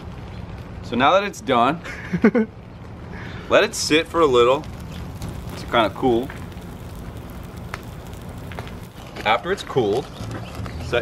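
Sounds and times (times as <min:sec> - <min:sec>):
flames hissing and crackling: 0:00.0 - 0:11.0.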